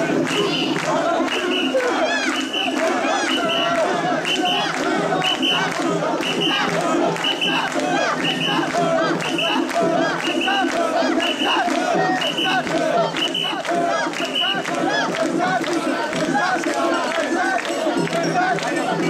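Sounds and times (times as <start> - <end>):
group chanting in rhythm: 0.0 - 19.0
large crowd noise: 0.0 - 19.0.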